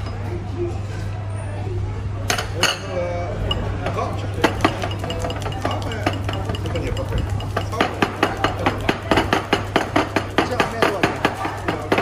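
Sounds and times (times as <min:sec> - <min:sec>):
chopsticks clacking on ceramic bowl: 0:04.5 - 0:08.9.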